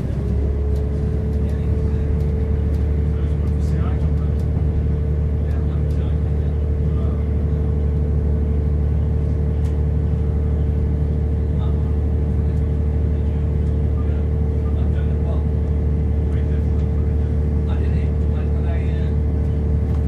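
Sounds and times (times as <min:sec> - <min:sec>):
train diesel engine drone: 0:00.0 - 0:20.0.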